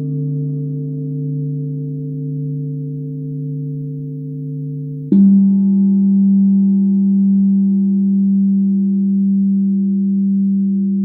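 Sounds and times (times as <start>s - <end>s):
sustained low droning tone: 0.0s - 11.0s.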